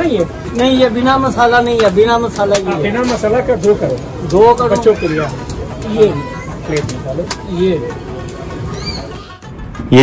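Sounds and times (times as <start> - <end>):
kitchen noise: 0.0 - 9.3
indistinct voices: 0.0 - 10.0.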